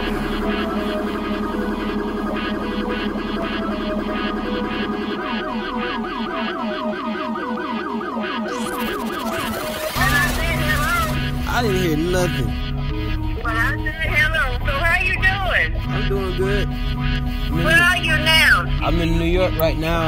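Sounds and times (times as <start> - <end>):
warbling siren-like synth tones: 0.0 - 20.0.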